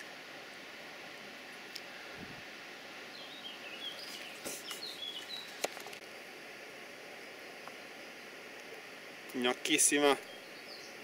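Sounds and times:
steady background hiss: 0.0s - 11.0s
small bird chirping: 3.1s - 5.6s, 10.0s - 11.0s.

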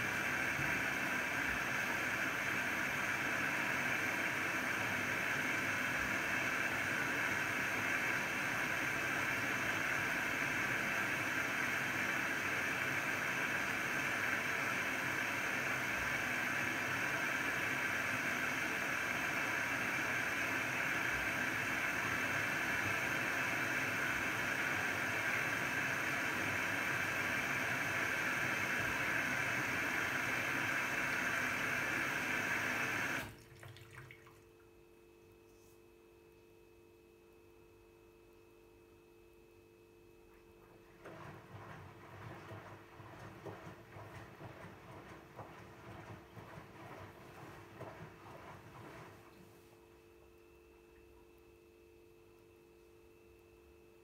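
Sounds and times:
washing machine filling with water: 0.0s - 34.9s, 40.2s - 51.5s.

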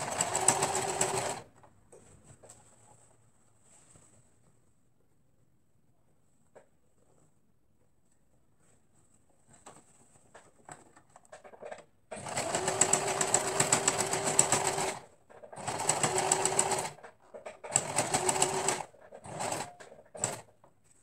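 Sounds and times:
sewing machine stitching: 0.0s - 1.5s, 11.4s - 20.5s.

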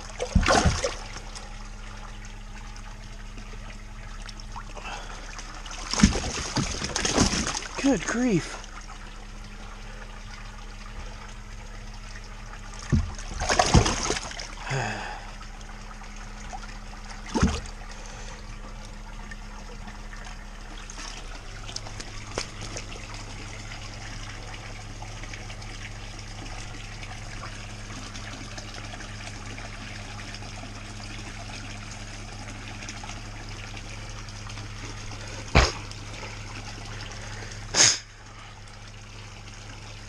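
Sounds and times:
low hum: 0.0s - 40.0s
water splashing into pond: 0.0s - 40.0s
knock or splash: 0.2s - 1.0s, 5.9s - 7.6s, 12.8s - 14.4s, 17.3s - 17.7s, 35.5s - 35.8s.

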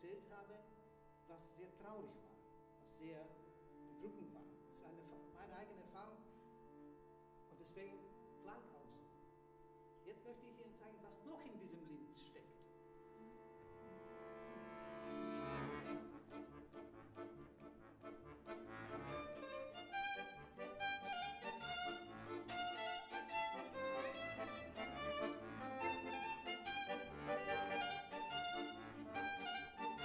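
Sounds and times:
accordion: 12.7s - 30.0s
violin: 13.0s - 16.8s, 18.8s - 30.0s.

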